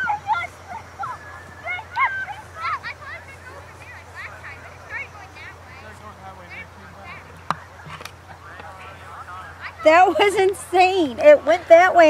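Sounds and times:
distant voices talking: 0.0 - 12.0.

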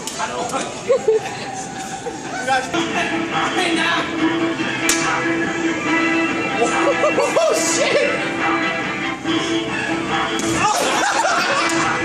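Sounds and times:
arcade music: 1.3 - 12.0.

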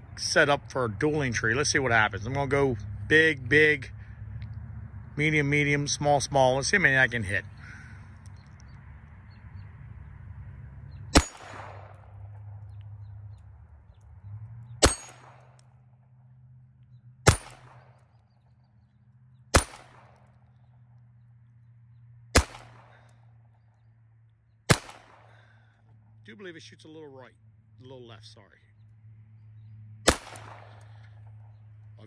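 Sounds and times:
metallic ring of steel target: 11.1 - 12.7, 14.8 - 16.0, 17.2 - 18.2, 19.5 - 20.4, 22.4 - 23.0, 30.1 - 31.3
pistol shots: 11.1 - 12.7, 14.8 - 15.7, 17.2 - 18.1, 19.5 - 20.5, 22.3 - 23.2, 24.7 - 25.6, 30.0 - 31.2.

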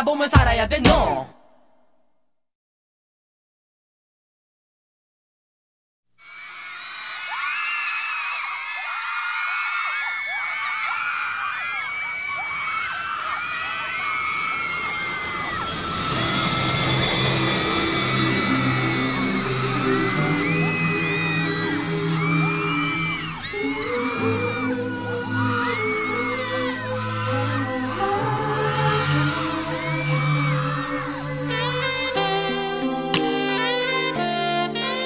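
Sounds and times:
music: 0.0 - 1.3, 16.0 - 35.0
crowd of girls screaming: 6.2 - 33.2.

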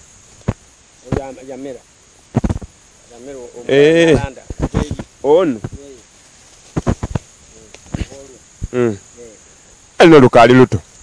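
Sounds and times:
insect trilling: 0.0 - 11.0.

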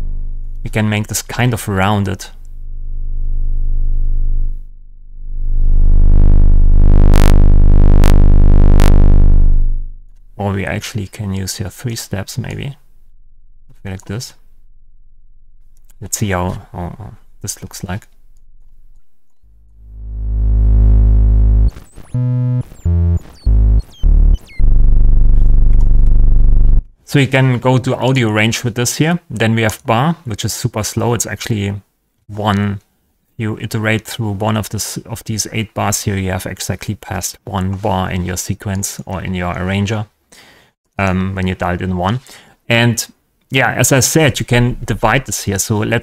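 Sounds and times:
low buzzy synthesized tone: 0.0 - 1.7, 2.3 - 10.9, 11.7 - 26.9.

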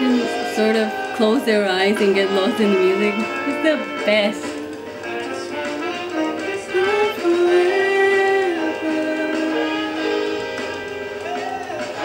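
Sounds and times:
live jazz band music: 1.6 - 12.0.

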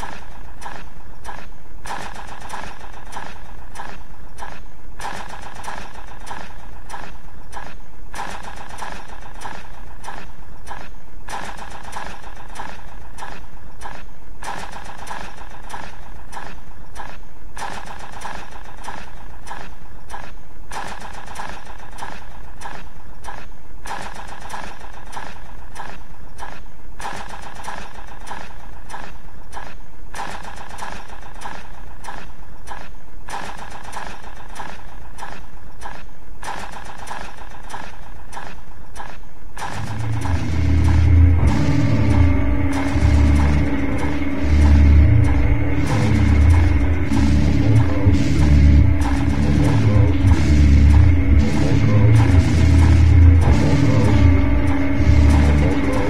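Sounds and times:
industrial noise music drone: 0.0 - 56.0
heavy bass: 39.7 - 56.0.

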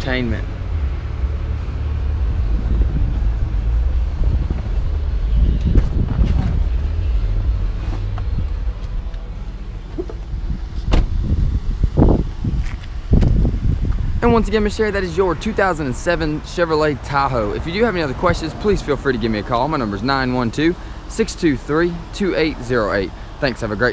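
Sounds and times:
low rumble inside car cabin: 0.0 - 23.9
car door thumping open: 5.6 - 6.7, 9.9 - 13.4
car door latch clicking: 10.8 - 11.2.

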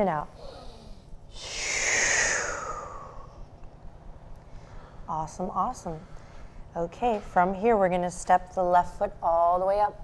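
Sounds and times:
person exhaling: 0.4 - 3.3.

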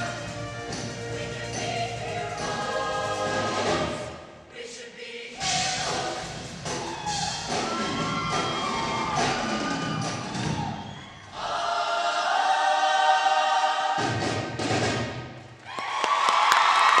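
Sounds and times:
large choir singing: 0.0 - 6.9, 10.4 - 14.6.

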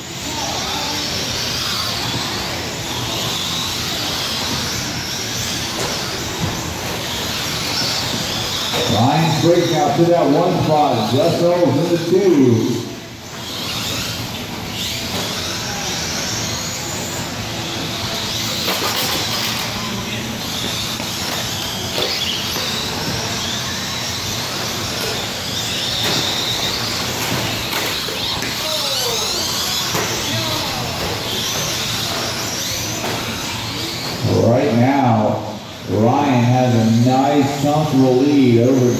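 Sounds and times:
rc truck motors whining: 0.0 - 38.9.

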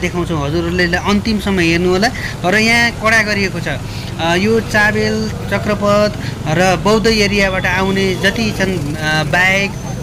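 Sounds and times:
man talking: 0.0 - 10.0
motorcycle engines idling: 0.0 - 10.0
street traffic: 0.0 - 10.0.

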